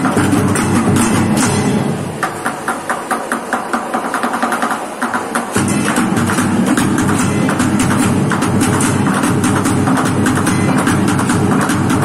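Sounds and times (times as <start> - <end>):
drumsticks striking buckets and cans: 0.0 - 12.0.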